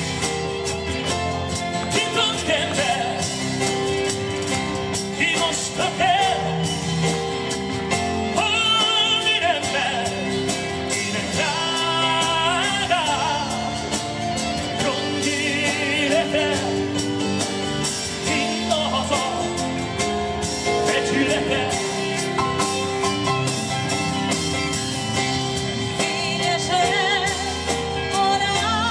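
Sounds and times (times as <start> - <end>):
strummed acoustic guitar: 0.0 - 28.2
drum kit: 0.0 - 28.9
man singing with vibrato: 1.5 - 4.1, 4.8 - 23.3, 25.2 - 28.9.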